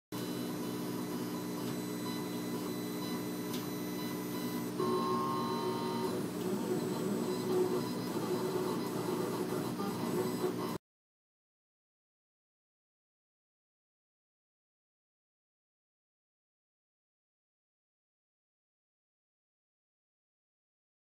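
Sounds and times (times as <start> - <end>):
stepper motors whining: 1.6 - 10.8.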